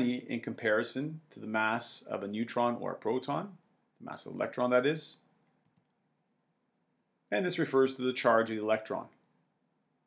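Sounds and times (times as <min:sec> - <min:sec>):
person speaking: 0:00.0 - 0:05.5.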